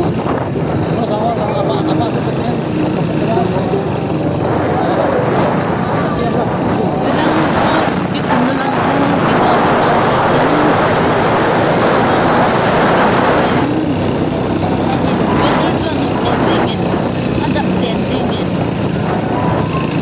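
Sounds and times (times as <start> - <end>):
vehicle running along road: 0.0 - 20.0
wind rushing over microphone: 0.0 - 20.0.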